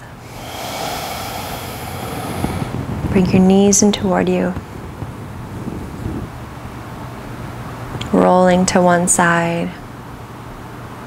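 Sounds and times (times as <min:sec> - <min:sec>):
deep breath close up: 0:00.0 - 0:03.3.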